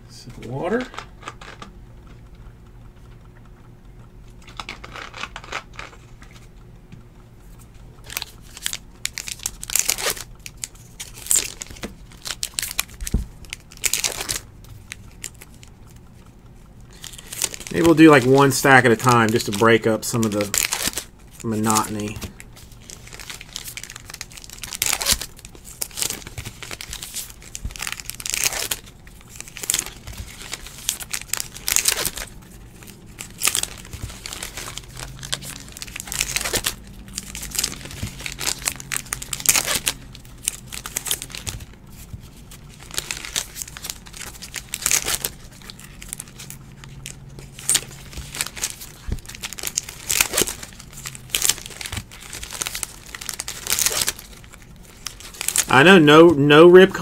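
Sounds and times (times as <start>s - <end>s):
card pack wrappers tearing: 4.4s - 6.0s, 8.0s - 15.7s, 16.9s - 57.0s.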